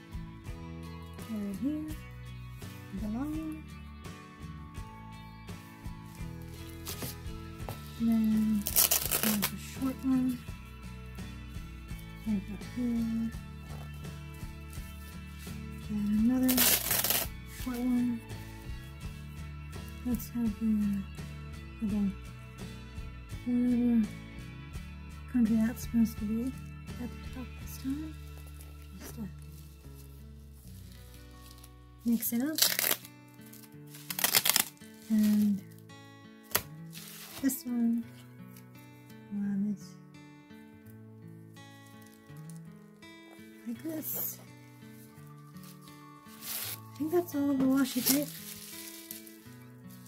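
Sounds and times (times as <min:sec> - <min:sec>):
background music: 0:00.0 - 0:50.0
packaging rustling: 0:07.8 - 0:09.6, 0:16.5 - 0:17.3, 0:32.4 - 0:35.8, 0:36.5 - 0:37.5, 0:41.8 - 0:42.7, 0:44.9 - 0:50.0.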